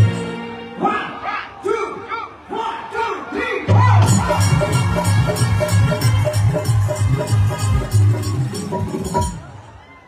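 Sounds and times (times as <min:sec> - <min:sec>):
amplified music with heavy bass: 0:03.7 - 0:09.4.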